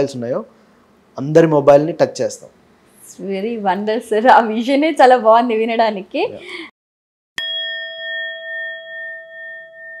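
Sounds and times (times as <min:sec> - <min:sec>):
singing bowl ringing: 0:07.4 - 0:10.0.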